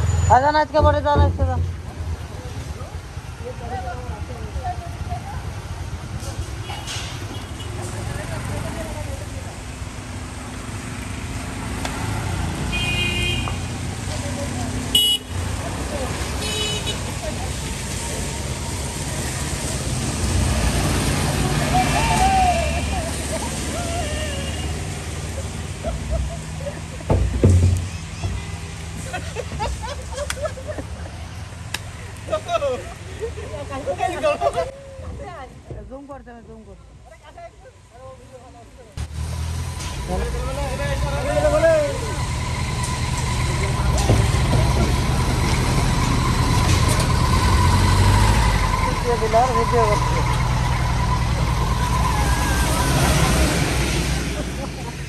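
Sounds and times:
bus engine rumbling: 0.0 - 55.0
traffic on wet road: 0.0 - 55.0
heavy vehicle passing close: 5.5 - 12.7, 17.0 - 27.1, 39.0 - 55.0.

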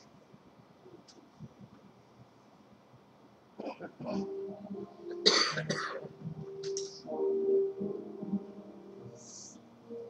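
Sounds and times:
person coughing: 3.6 - 4.3, 5.2 - 6.1.

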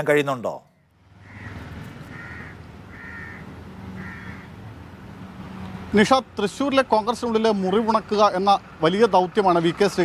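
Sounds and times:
bird harsh calls: 1.1 - 4.6.

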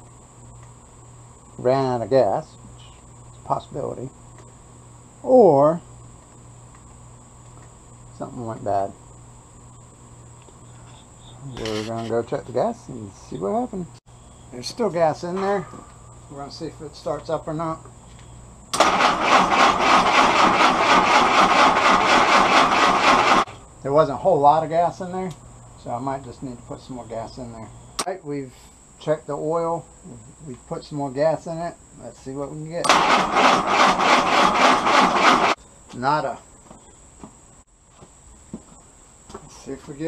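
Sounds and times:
insects chirring: 0.0 - 40.0
electric starter cranking engine: 18.7 - 23.5, 32.8 - 35.6.

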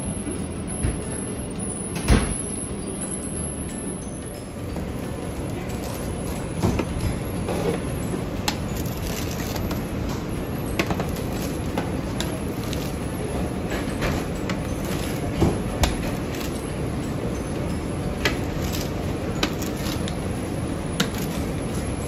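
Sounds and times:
pizza cutter rolling through crust: 4.8 - 22.0.

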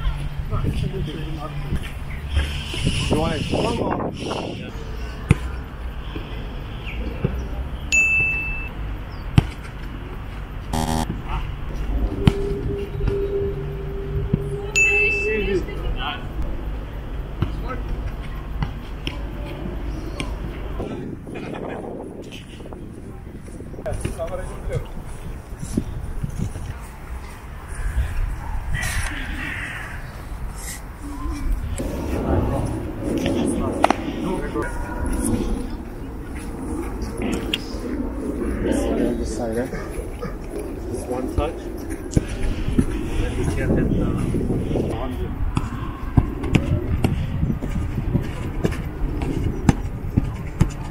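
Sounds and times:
short buzz: 10.7 - 11.1
steady low tone: 10.7 - 11.1
steady low rumble: 31.6 - 44.7.

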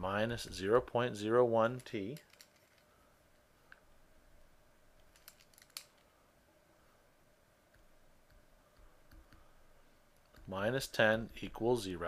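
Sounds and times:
stylus tapping on tablet: 7.7 - 9.5.

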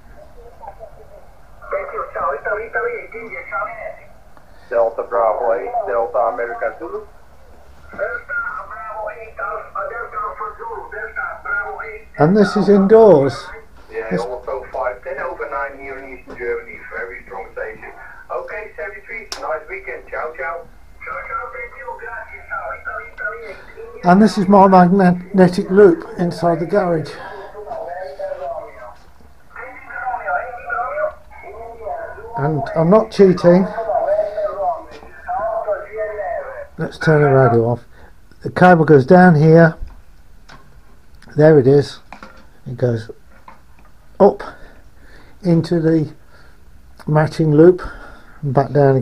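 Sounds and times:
radio voice through small speaker: 0.0 - 7.2, 7.9 - 37.8.

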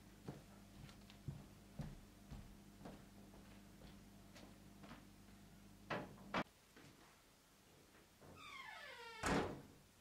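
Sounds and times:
door hinge creaking: 8.3 - 9.6
door shutting with a thunk: 9.2 - 9.7.

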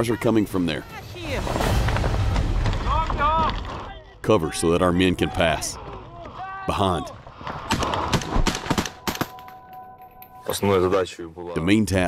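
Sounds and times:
man speaking: 10.4 - 12.0.

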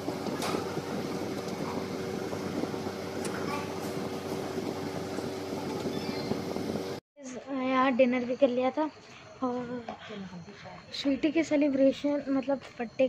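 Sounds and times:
machine hum: 0.0 - 7.0.

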